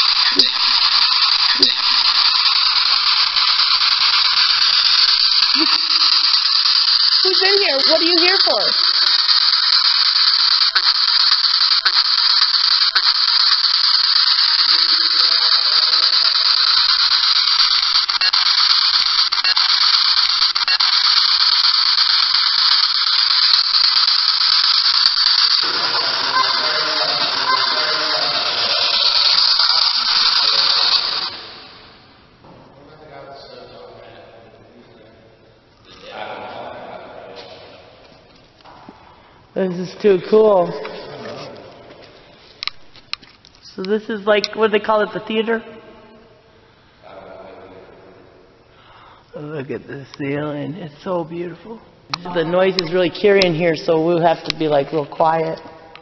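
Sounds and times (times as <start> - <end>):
loud steady hiss: 0.0 - 32.1
faint voice-like fragments: 14.5 - 17.4, 25.6 - 31.6.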